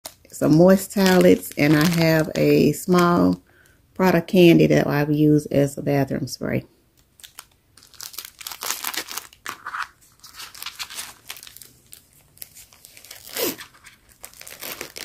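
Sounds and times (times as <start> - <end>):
plastic wrappers crinkling: 0.0 - 3.7, 6.9 - 15.0.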